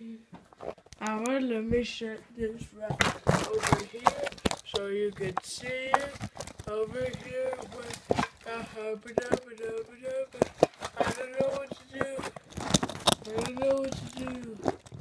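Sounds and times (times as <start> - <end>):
person making wordless held notes: 1.1 - 15.0
clicks and knocks from handling: 2.4 - 15.0.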